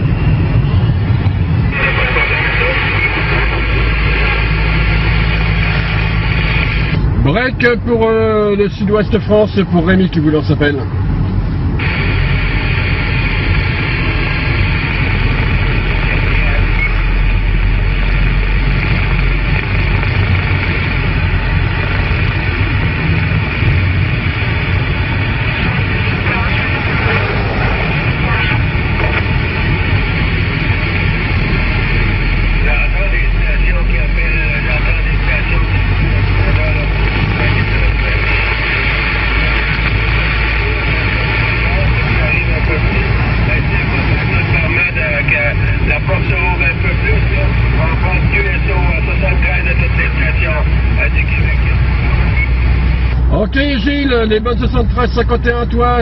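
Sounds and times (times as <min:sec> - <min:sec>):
radio static and hiss: 0:00.0 - 0:56.0
faint voice over radio: 0:01.7 - 0:04.6, 0:25.6 - 0:29.8.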